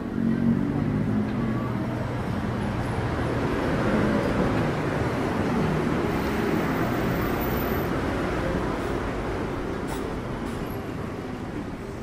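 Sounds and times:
street traffic hum: 0:00.0 - 0:12.0.

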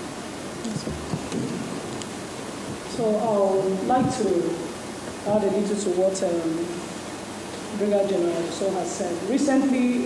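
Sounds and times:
microphone handling rumble and rustle: 0:00.5 - 0:05.6.

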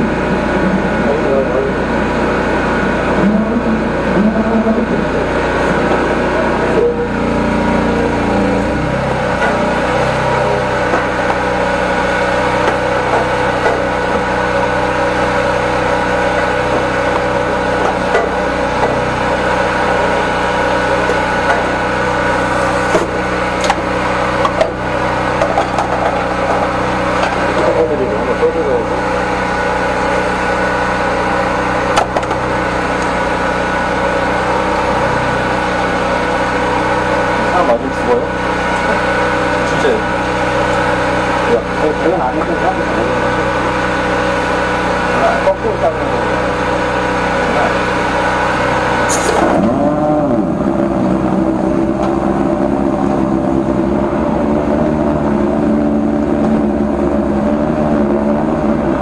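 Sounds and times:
drain jetting machine running: 0:00.0 - 0:59.0.

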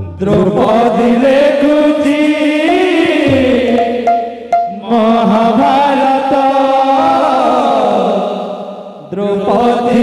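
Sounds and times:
barrel drum stroke: 0:02.7 - 0:05.0
men chanting together: 0:04.8 - 0:08.7.

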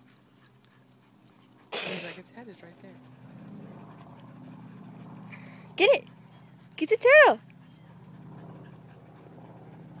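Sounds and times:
dogs panting faintly: 0:00.0 - 0:10.0.

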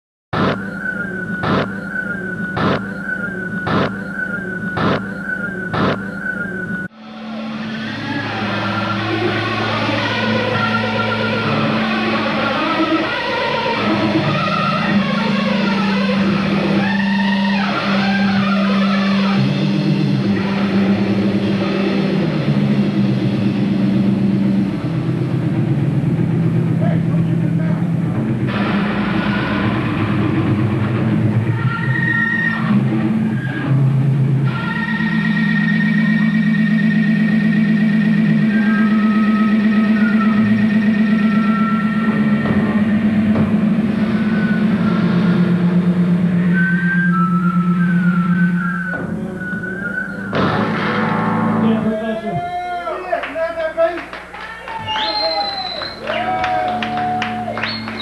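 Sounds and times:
distorted electric bass: 0:00.3 - 0:00.8, 0:01.4 - 0:01.9, 0:02.5 - 0:06.2, 0:06.9 - 0:52.3.

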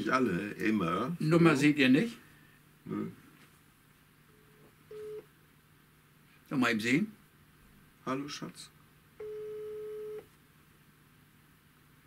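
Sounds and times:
telephone ringback tone: 0:04.4 - 0:05.2, 0:09.2 - 0:10.3.

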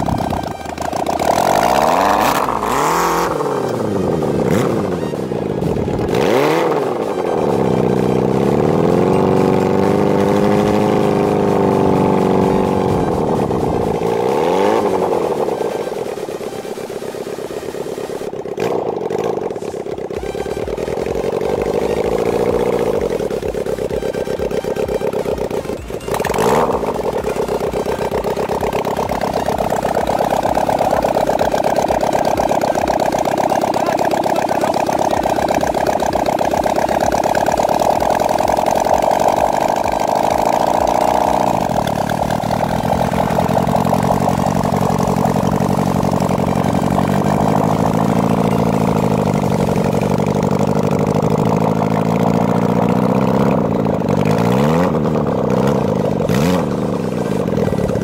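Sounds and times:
go-kart engine running: 0:00.0 - 0:58.0.

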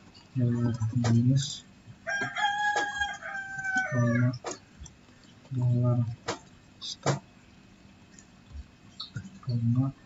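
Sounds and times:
rooster crowing: 0:02.0 - 0:04.4.

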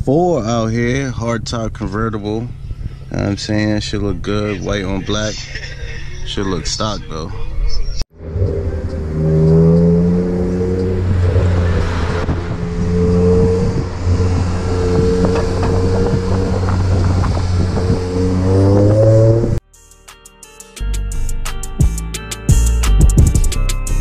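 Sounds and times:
car engine droning: 0:00.0 - 0:19.6.

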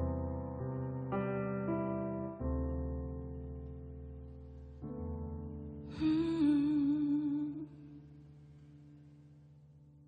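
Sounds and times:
woman singing long note: 0:05.9 - 0:07.7.

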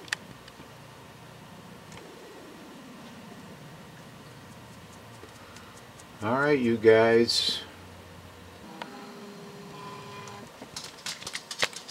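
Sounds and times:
camcorder zoom motor whir: 0:08.6 - 0:10.5.

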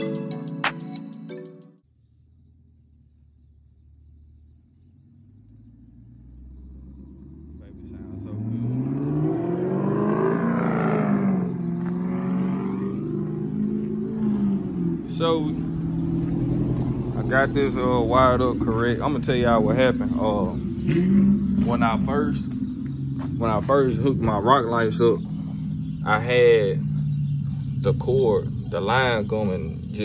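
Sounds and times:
car engine accelerating: 0:02.1 - 0:30.0.

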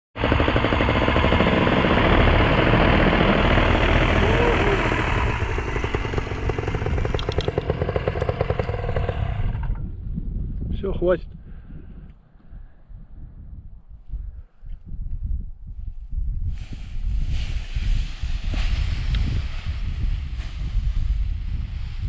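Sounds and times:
paramotor engine and propeller: 0:00.2 - 0:10.0, 0:17.1 - 0:22.0.

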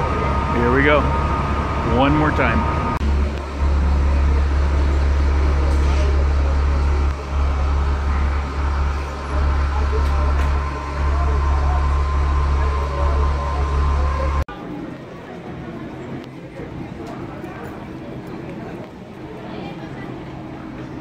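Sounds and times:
background voices: 0:00.0 - 0:14.5
diesel coach engine idling: 0:00.0 - 0:14.5.

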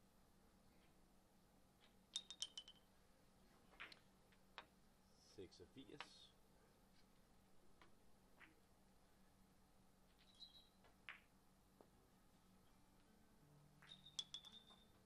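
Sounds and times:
billiard balls colliding: 0:01.8 - 0:02.9, 0:03.6 - 0:04.8, 0:10.8 - 0:11.9, 0:13.8 - 0:15.0.

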